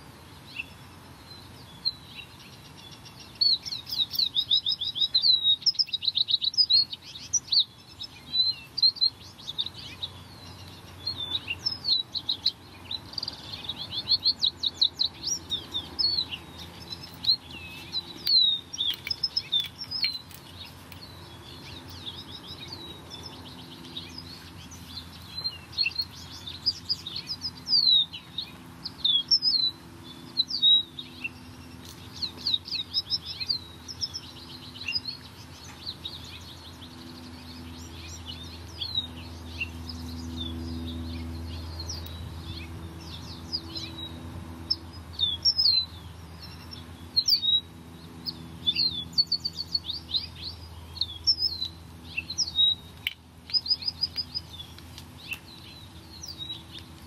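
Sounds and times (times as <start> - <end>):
small songbirds chirping: 0.0 - 57.0.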